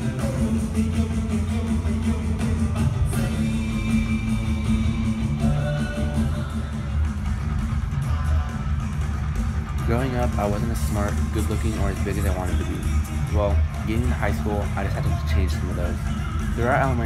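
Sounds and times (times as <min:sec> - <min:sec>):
dense steady bass: 0:00.0 - 0:17.0
rock music with electric guitar: 0:00.0 - 0:17.0.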